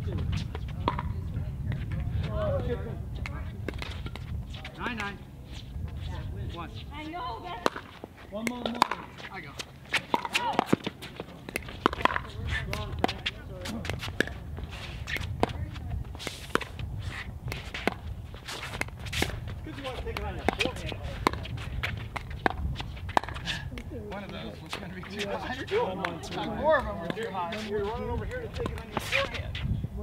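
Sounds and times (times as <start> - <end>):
shoes scuffing on hard court: 3.7 - 29.7
paddles hitting plastic ball: 10.0 - 14.4.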